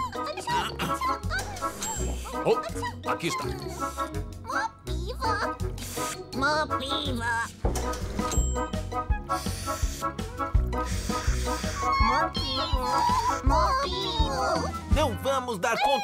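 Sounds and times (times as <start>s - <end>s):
gentle cartoon music with bass beat: 0.0s - 16.0s.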